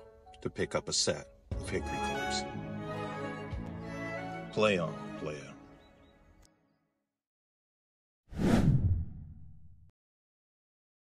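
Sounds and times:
whoosh sound effect: 0:08.3 - 0:09.7.

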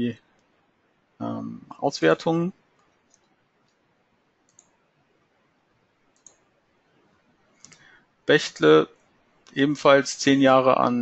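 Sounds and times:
faint mouse clicks: 0:02.7 - 0:03.8, 0:04.4 - 0:04.8, 0:06.0 - 0:06.5, 0:07.6 - 0:07.9.

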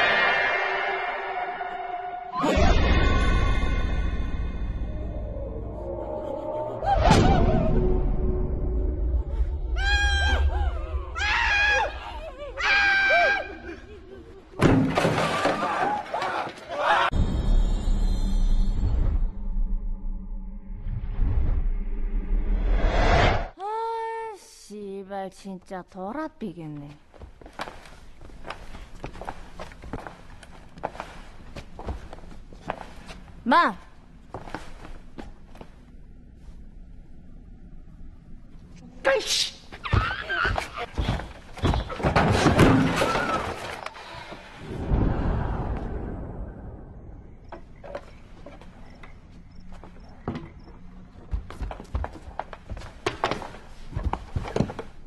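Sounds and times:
footsteps: 0:26.7 - 0:33.4, 0:39.8 - 0:42.5, 0:47.5 - 0:55.0.

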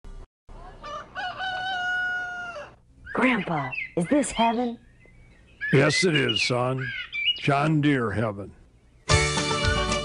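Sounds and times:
rooster crowing: 0:00.5 - 0:02.8.

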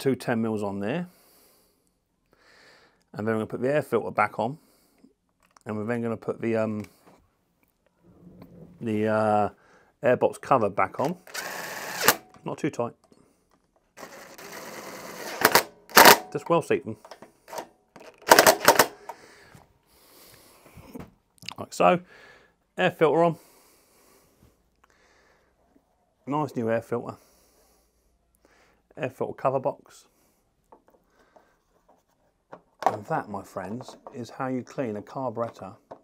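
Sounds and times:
power driver spinning nut: 0:11.1 - 0:12.2, 0:14.0 - 0:16.2
sharp clicks: 0:15.4 - 0:16.2, 0:17.1 - 0:19.2.

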